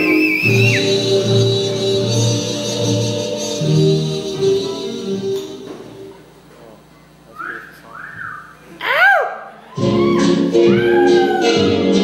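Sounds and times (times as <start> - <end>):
audience whooping: 0.0 - 1.4, 8.2 - 12.0
audience whistling: 0.0 - 3.1, 7.3 - 8.6.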